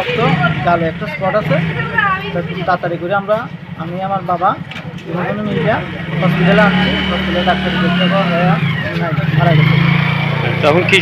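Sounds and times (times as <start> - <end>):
vehicle engine humming: 0.0 - 11.0
man speaking: 2.4 - 9.8, 10.5 - 11.0.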